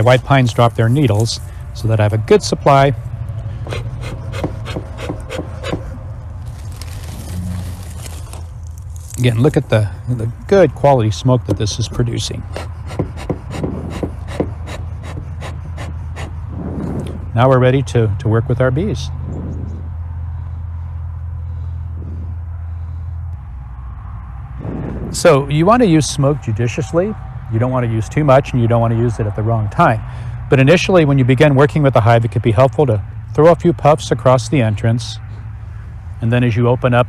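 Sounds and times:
low outdoor rumble: 0.0s - 37.0s
steady low hum: 0.0s - 37.0s
bellows puffing: 12.2s - 17.3s.

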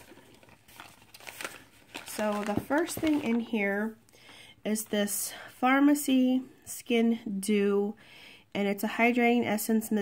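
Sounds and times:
plastic packaging crinkling: 0.0s - 3.8s
soft crackles: 0.0s - 5.0s.

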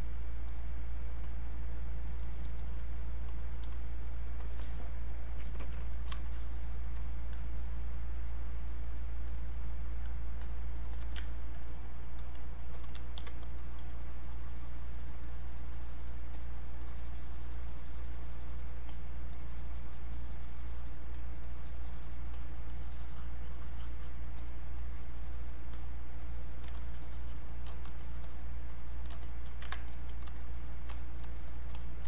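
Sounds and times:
low electrical hum: 0.0s - 32.0s
stylus scratching on tablet: 5.4s - 7.0s, 12.7s - 32.0s
computer keys clicking: 10.0s - 11.4s, 12.1s - 32.0s.

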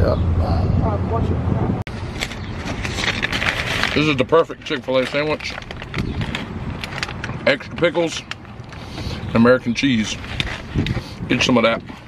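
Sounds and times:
paper wrapper crinkling: 2.1s - 8.8s, 10.0s - 11.0s.

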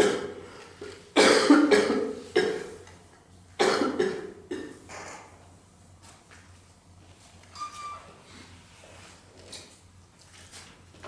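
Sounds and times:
person coughing: 0.0s - 0.4s, 1.2s - 2.8s, 3.6s - 4.8s.

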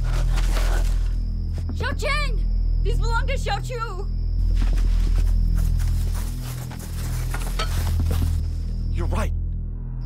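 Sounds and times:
low droning horror score: 8.1s - 10.0s.

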